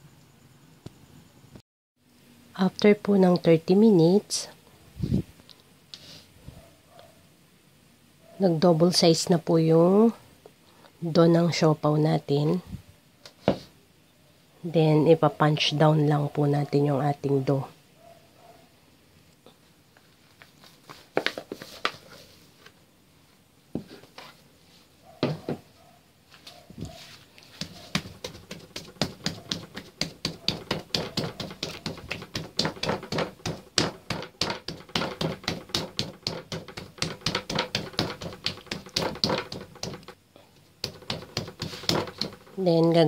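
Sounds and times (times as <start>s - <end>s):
hands kneading dough: 26.4s - 43.0s
pats and slaps on dough: 27.4s - 40.2s, 40.8s - 42.6s.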